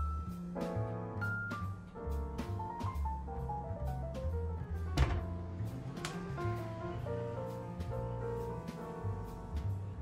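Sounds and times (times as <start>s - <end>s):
jazz piano music: 0.0s - 10.0s
cabinet door thunk: 5.0s - 5.4s.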